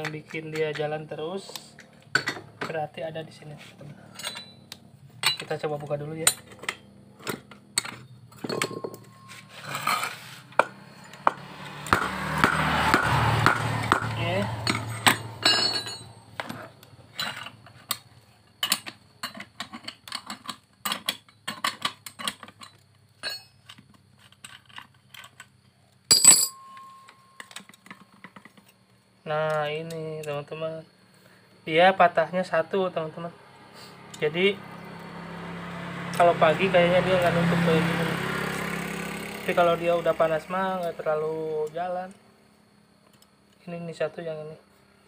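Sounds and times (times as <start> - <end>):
metal parts clinking: 4.0 - 5.6, 6.2 - 11.3, 14.6 - 25.5, 26.1 - 28.8
impact wrench running: 10.2 - 16.1.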